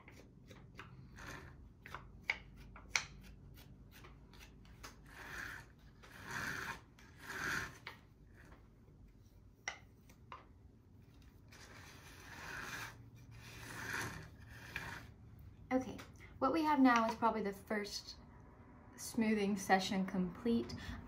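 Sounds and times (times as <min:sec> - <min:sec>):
tool scraping wet clay: 0:00.0 - 0:08.6, 0:11.2 - 0:15.2.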